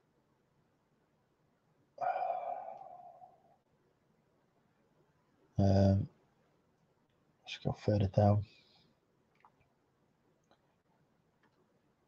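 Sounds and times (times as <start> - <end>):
man sighing: 2.0 - 3.4.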